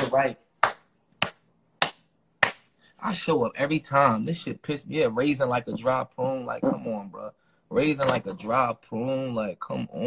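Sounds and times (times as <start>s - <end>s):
hand claps: 0.0s - 2.7s.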